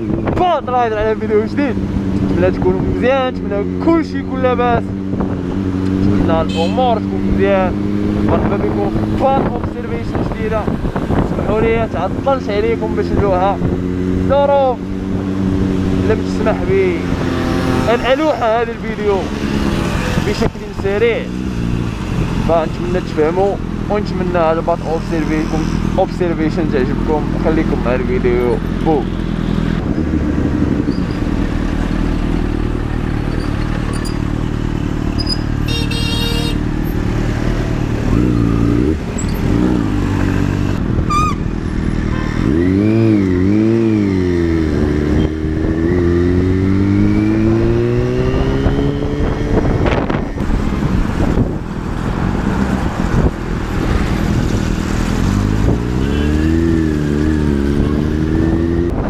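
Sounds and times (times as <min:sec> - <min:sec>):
motorcycle engine revving: 0:00.0 - 0:59.0.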